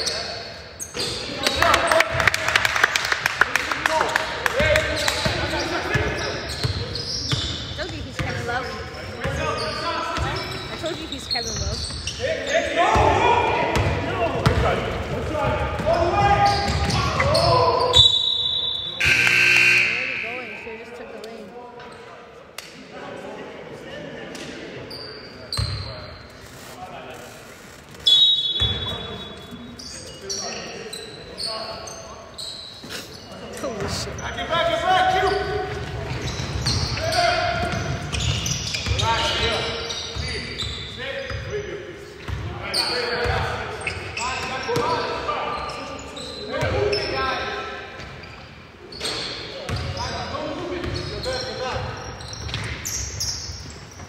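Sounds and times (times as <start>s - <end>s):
players shouting in a hall: 15.8s - 20.8s.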